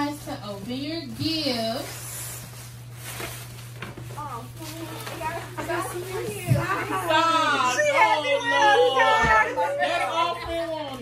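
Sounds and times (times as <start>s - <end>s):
tissue paper rustling: 0.0s - 8.1s.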